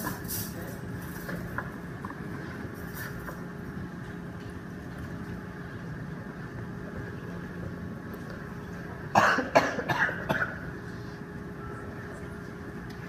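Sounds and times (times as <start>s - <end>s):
steady room hum: 0.0s - 13.0s
person coughing: 9.1s - 10.6s.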